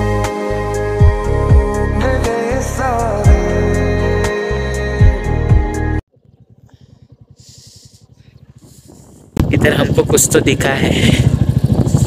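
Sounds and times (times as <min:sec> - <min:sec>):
motorcycle engine puttering: 0:06.1 - 0:12.0.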